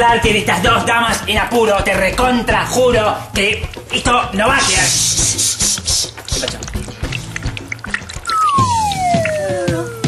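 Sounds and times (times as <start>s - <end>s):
low background music: 0.0s - 10.0s.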